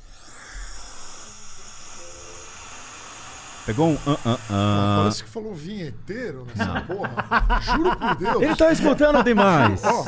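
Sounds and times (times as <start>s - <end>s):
white-noise hiss: 1.2s - 5.3s.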